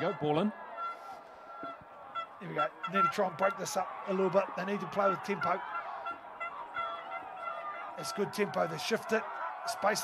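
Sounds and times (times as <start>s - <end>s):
background noise: 0.0s - 10.0s.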